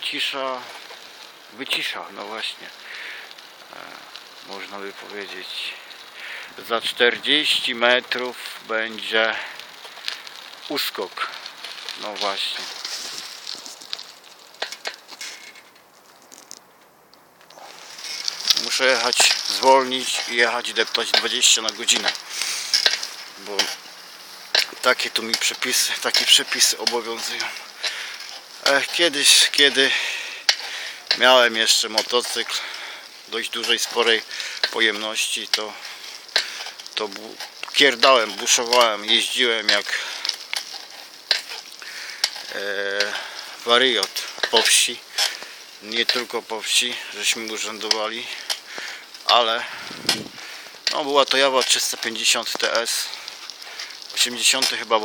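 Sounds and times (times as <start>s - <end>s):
rolling tyre hiss: 0.0s - 55.0s
bicycle clicks and rattles: 0.1s - 55.0s.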